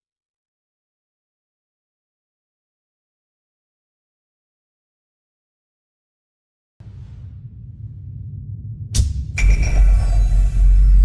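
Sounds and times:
deep bass boom impact: 0:06.8 - 0:11.0
sharp hit: 0:06.8 - 0:11.0.

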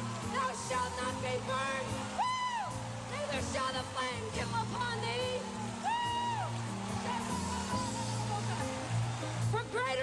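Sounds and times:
woman singing into microphone: 0:00.3 - 0:02.0, 0:03.1 - 0:05.4.

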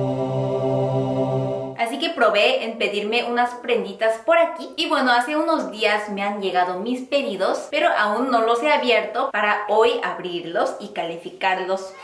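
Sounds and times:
low chant-like vocal note: 0:00.0 - 0:01.8
speech: 0:01.8 - 0:12.0.

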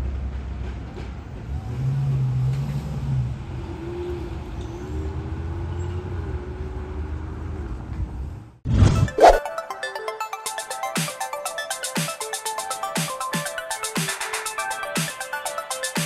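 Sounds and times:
car engine and tyre noise: 0:00.0 - 0:08.8.

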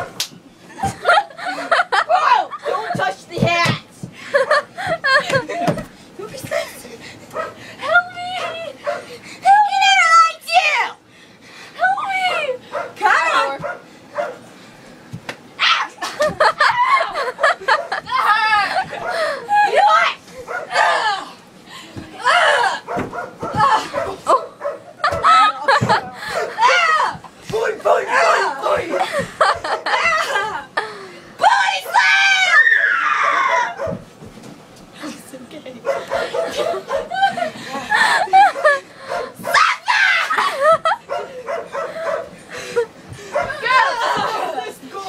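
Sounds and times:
girls yelping and squealing: 0:00.8 - 0:03.7, 0:07.8 - 0:11.0, 0:11.8 - 0:13.6, 0:15.6 - 0:27.3, 0:27.9 - 0:30.8, 0:31.4 - 0:34.0, 0:36.0 - 0:45.0.

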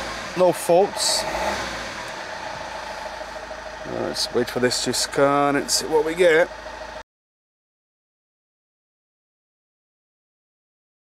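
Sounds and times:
diesel engine idling: 0:00.0 - 0:07.0.

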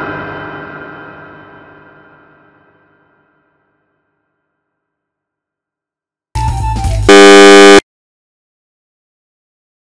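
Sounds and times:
loud harsh buzzer tone: 0:07.1 - 0:07.8.

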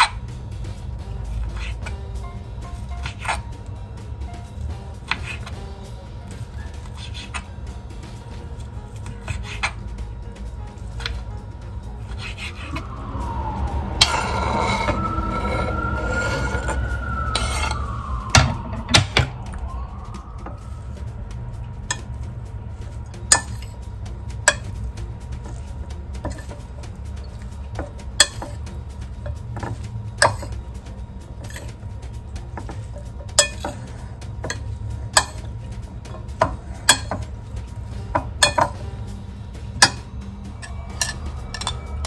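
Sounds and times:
background music: 0:00.0 - 0:42.0
wailing tone rising and falling: 0:12.4 - 0:23.1, 0:39.6 - 0:42.0
utensil clinking against bowl: 0:25.4 - 0:30.6, 0:32.5 - 0:37.3, 0:38.1 - 0:39.0, 0:39.8 - 0:41.9.

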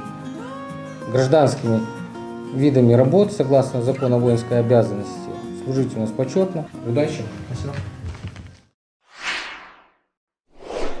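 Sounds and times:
whoosh sound effects: 0:09.0 - 0:11.0.

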